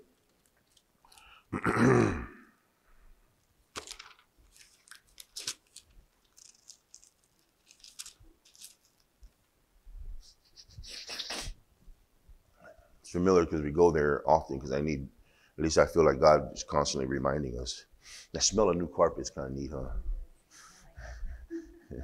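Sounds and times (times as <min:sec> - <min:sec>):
man clearing his throat: 0:01.5 - 0:02.6
thin paper pages rustling: 0:03.7 - 0:09.4.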